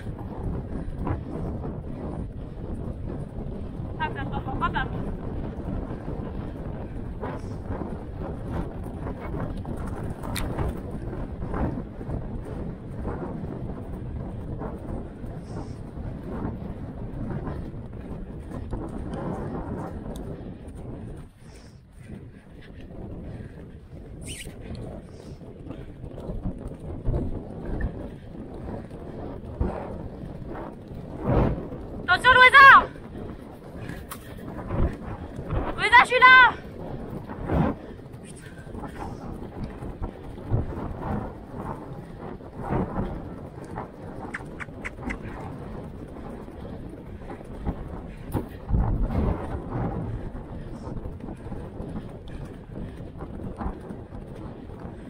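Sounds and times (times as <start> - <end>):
pony galloping over turf: 0.0 - 55.0
wind on microphone: 0.0 - 55.0.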